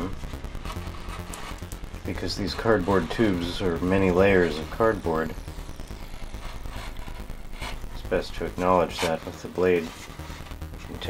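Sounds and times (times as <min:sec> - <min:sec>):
steady low hum: 0:00.0 - 0:11.0
knife scoring cardboard: 0:08.5 - 0:11.0.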